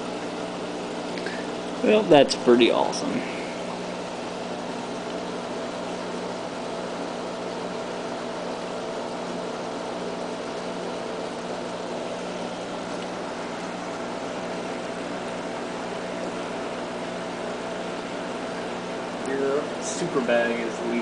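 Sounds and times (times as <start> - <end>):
machine hum: 0.0 - 21.0.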